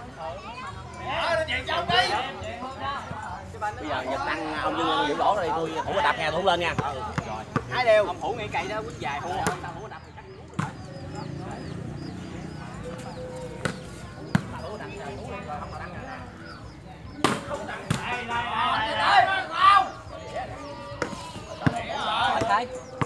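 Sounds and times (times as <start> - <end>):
men calling out: 17.8 - 23.0.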